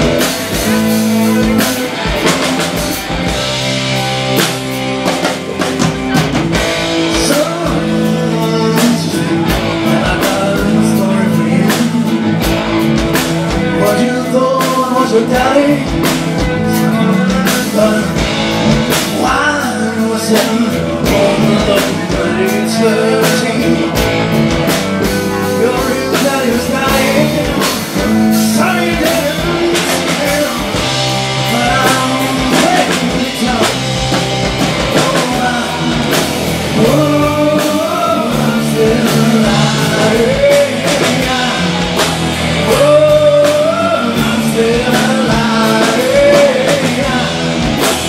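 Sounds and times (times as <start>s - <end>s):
live rock band: 0.0s - 48.0s
man singing: 0.0s - 48.0s.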